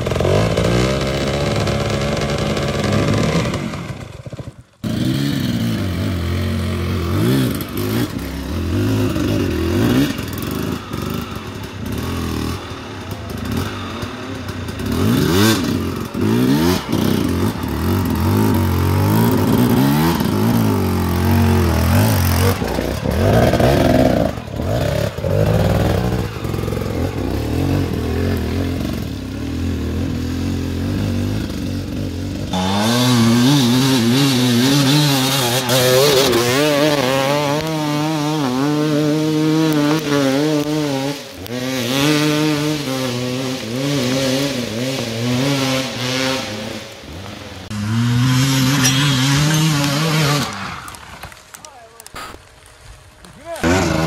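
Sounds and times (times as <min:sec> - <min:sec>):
dirt bike engines revving: 0:00.0 - 0:52.4, 0:53.3 - 0:54.0.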